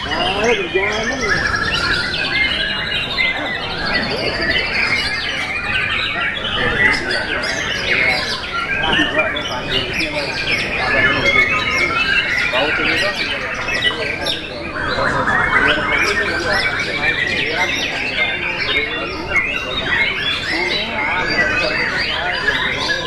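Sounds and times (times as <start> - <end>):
songbirds singing whistles and trills: 0.0 - 23.0.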